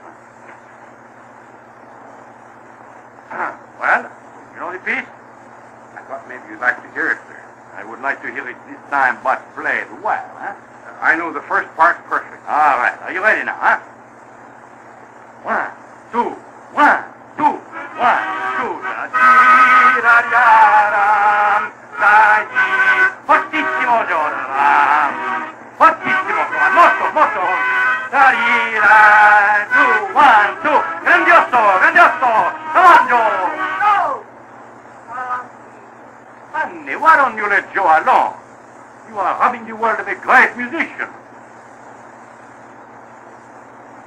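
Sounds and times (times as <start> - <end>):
low hum of old disc recording: 0.0 - 44.0.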